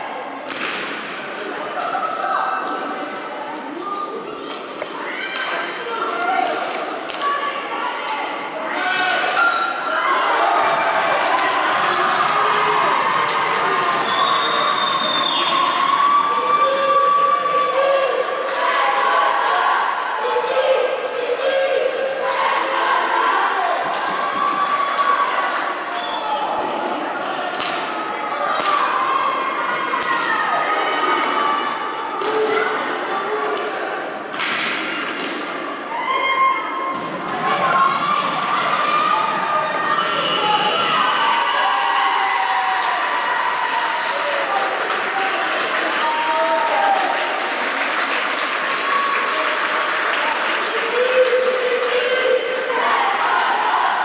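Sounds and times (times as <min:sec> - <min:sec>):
players and spectators shouting: 0:07.2 - 0:34.1, 0:35.7 - 0:47.6, 0:50.2 - 0:54.0
sticks and puck clacking on boards: 0:33.4 - 0:35.7.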